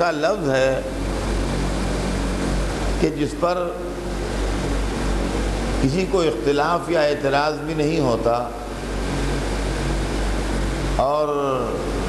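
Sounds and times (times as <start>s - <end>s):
even hiss: 0.0s - 12.0s
low hum: 0.0s - 12.0s.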